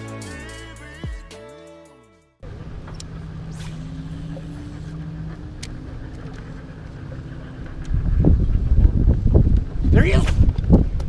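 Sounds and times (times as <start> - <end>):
boat motor humming: 2.4 - 9.8.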